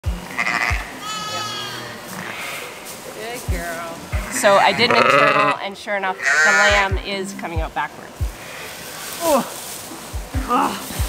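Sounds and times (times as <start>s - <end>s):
music with deep beat: 0.0s - 1.2s, 3.4s - 5.5s, 6.6s - 11.0s
sheep bleating: 0.2s - 2.8s, 4.1s - 5.6s, 6.2s - 7.0s.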